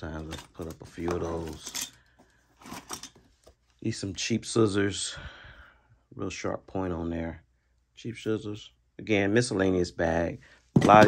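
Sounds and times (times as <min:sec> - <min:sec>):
hand tools clinking: 0:00.0 - 0:03.2.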